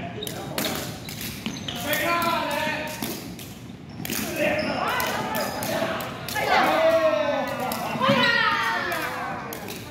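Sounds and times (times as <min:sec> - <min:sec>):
people calling out: 0:04.4 - 0:09.6.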